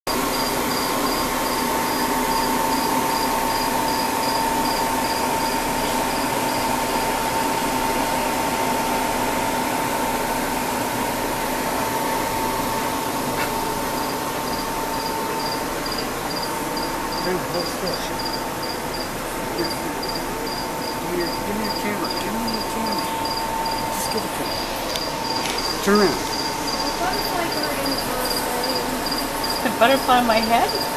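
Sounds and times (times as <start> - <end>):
cricket chirping: 0.1 - 7.4, 13.4 - 30.9
machine hum and hiss: 0.1 - 30.9.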